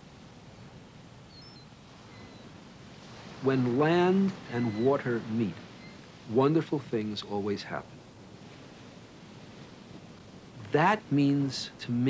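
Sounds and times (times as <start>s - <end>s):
surf breaking on rocks: 1.9s - 12.0s.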